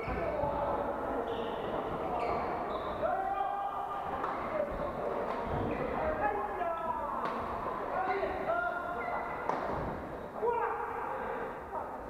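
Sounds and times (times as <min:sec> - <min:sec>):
shoes squeaking on court floor: 0:01.2 - 0:03.1.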